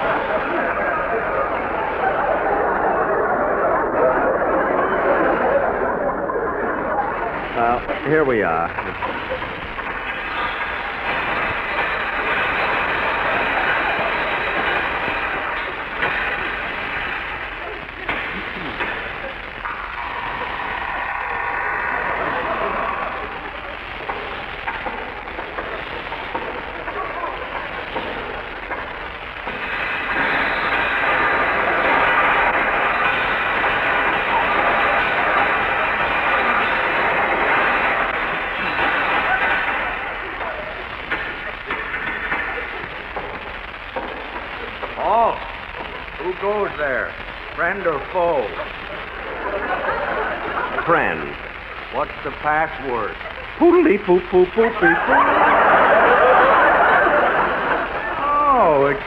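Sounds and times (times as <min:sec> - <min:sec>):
audience laughter: 0:00.0 - 0:07.6, 0:08.8 - 0:09.9, 0:11.2 - 0:15.5, 0:17.4 - 0:29.0, 0:45.5 - 0:46.3, 0:48.5 - 0:51.5, 0:54.4 - 0:58.8.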